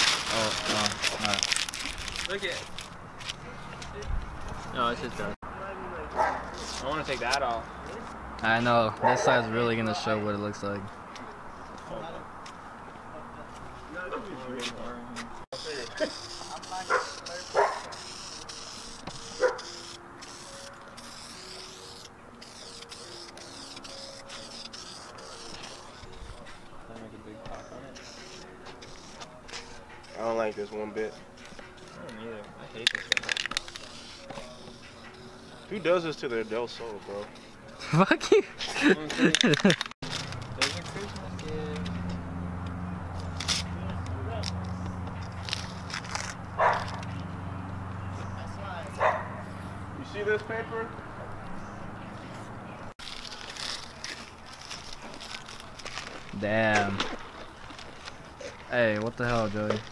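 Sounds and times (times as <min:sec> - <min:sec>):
tape and paper peeling and tearing: 0:00.0 - 0:04.8, 0:06.4 - 0:08.8, 0:14.6 - 0:26.6, 0:27.9 - 0:32.2, 0:32.8 - 0:38.1, 0:39.2 - 0:47.4, 0:53.0 - 0:59.9
dog barking: 0:06.1 - 0:06.5, 0:09.0 - 0:09.4, 0:16.8 - 0:17.9, 0:19.4 - 0:19.7, 0:46.6 - 0:47.0, 0:49.0 - 0:49.5
spray paint can hissing: 0:15.6 - 0:26.4, 0:28.0 - 0:30.7, 0:32.8 - 0:36.6.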